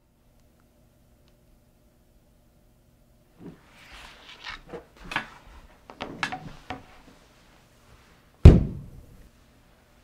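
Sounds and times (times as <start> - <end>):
heavy thud against a wall: 8.4 - 9.0.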